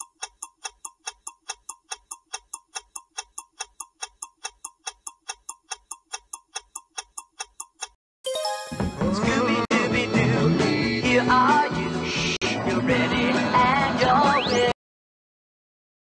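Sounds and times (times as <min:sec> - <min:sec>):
clock ticking: 0:00.0 - 0:08.0.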